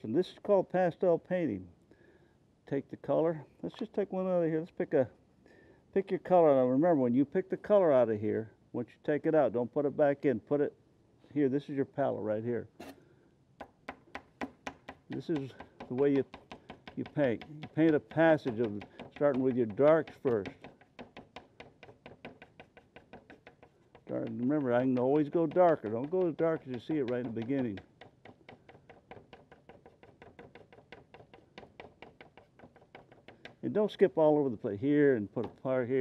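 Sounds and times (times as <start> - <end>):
pastel tapping on paper: 13.6 - 33.6.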